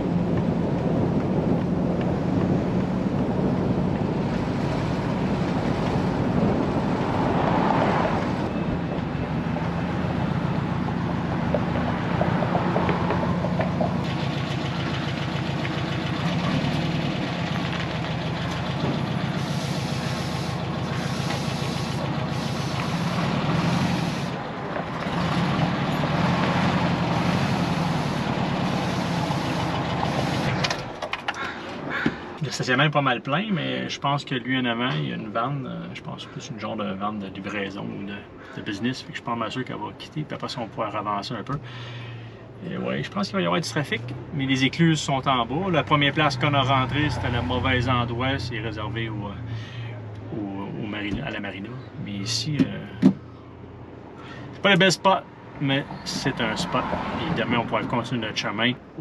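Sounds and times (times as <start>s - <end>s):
van engine running: 0.0s - 7.5s, 8.1s - 31.2s.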